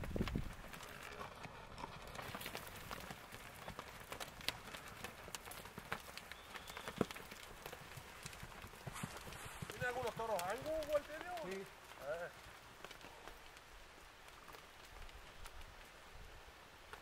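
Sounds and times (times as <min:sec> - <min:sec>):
cattle hooves on stony dirt: 0:00.0 - 0:17.0.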